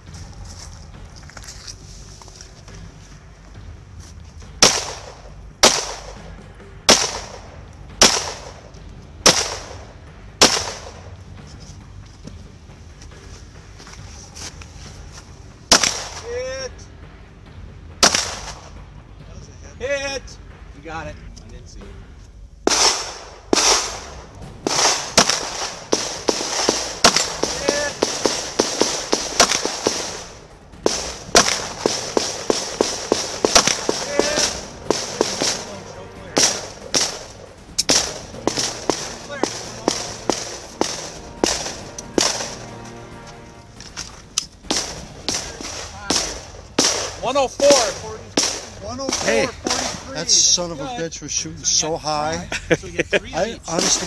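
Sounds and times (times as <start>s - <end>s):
handgun shots: 4.6s - 6.2s, 6.9s - 7.4s, 8.0s - 8.6s, 9.3s - 9.8s, 10.4s - 11.0s, 15.7s - 16.2s, 18.0s - 18.6s, 24.7s - 30.3s, 30.9s - 35.6s, 44.7s - 47.2s.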